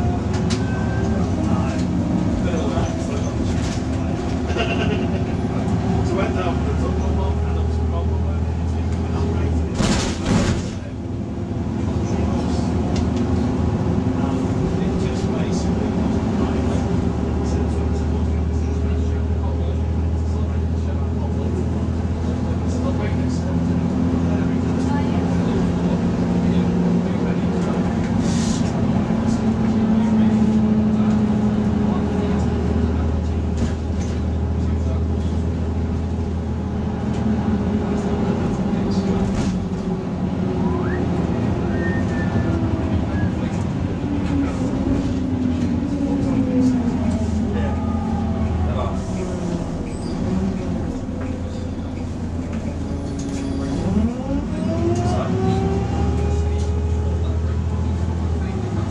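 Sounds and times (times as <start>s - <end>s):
bus diesel engine running: 0.0s - 58.9s.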